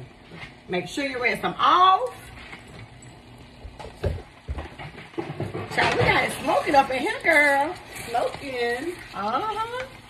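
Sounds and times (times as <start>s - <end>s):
vegetables sizzling in a wok: 6.3s - 10.0s.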